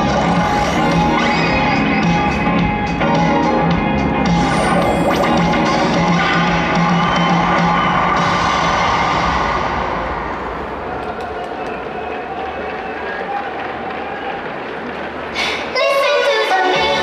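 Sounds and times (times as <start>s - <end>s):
crowd noise: 0.0s - 17.0s
stadium pa music: 0.0s - 17.0s.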